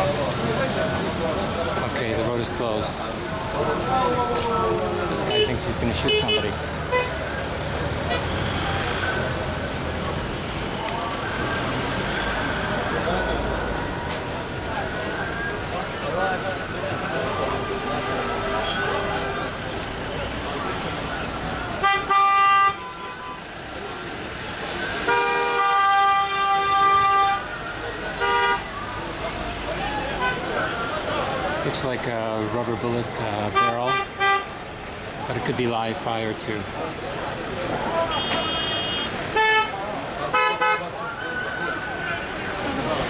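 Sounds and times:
street traffic noise: 0.0 - 43.0
vehicle horns honking: 5.2 - 7.2, 17.9 - 19.5, 21.3 - 23.5, 25.0 - 27.5, 28.2 - 28.7, 33.4 - 34.6, 38.0 - 40.9.

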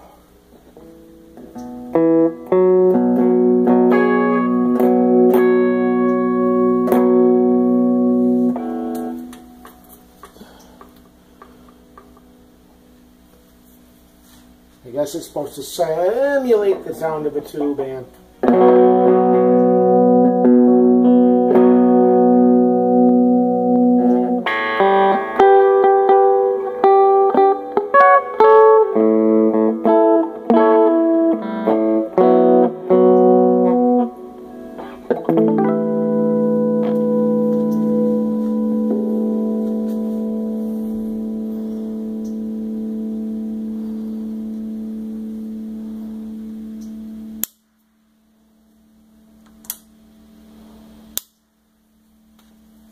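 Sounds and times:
distorted electric guitar chords: 0.0 - 52.9.

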